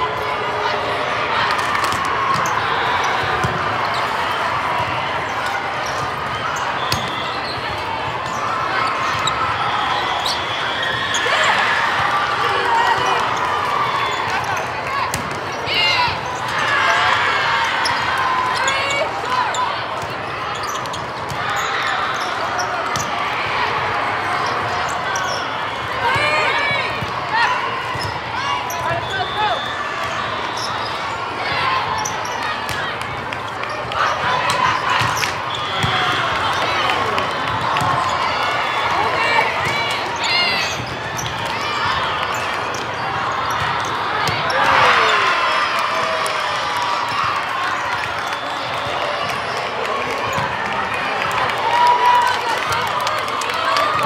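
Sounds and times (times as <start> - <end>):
background hubbub: 0.0 - 54.0
players and spectators calling out: 0.0 - 54.0.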